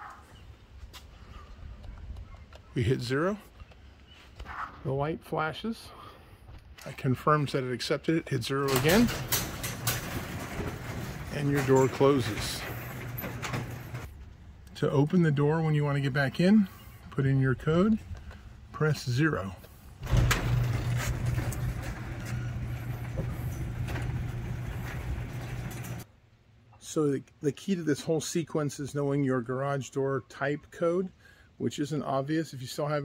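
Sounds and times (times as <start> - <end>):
garage door opener rolling and rattling: 8.6 - 14.1, 20.0 - 26.1.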